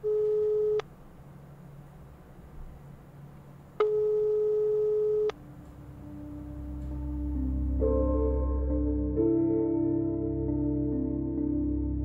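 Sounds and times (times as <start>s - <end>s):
telephone tone: 0.0s - 0.8s, 3.8s - 5.4s
low held ambient music note: 0.0s - 12.0s.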